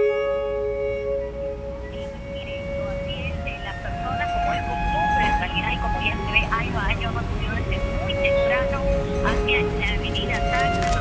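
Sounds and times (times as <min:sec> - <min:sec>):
low rumble of traffic: 0:00.0 - 0:11.0
person speaking like news report: 0:01.9 - 0:11.0.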